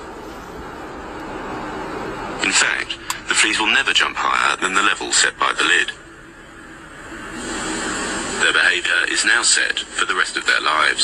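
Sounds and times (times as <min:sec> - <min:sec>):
steady hiss or rumble: 0:00.0 - 0:11.0.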